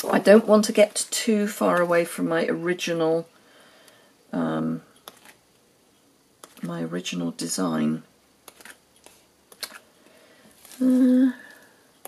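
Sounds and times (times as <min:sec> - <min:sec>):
paper and card clicks and taps: 0:08.5 - 0:09.8.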